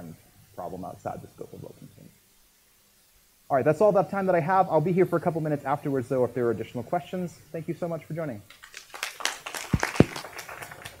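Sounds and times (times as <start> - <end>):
sparse applause: 8.6 - 11.0.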